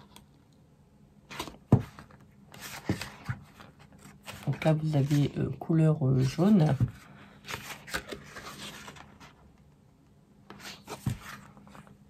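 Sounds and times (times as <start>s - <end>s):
paper pages rustling: 1.3s - 9.7s, 10.5s - 12.0s.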